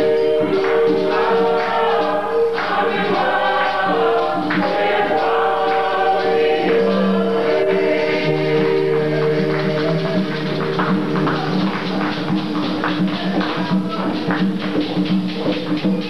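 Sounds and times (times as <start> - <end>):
congregation singing in chorus: 0.0 - 14.5
light percussion: 0.0 - 16.0.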